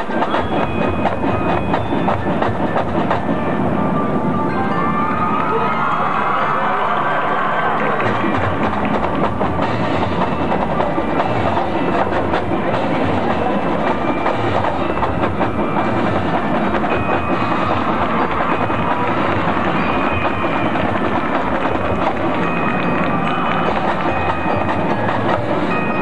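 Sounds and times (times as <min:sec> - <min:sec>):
marching band playing: 0:00.0 - 0:26.0.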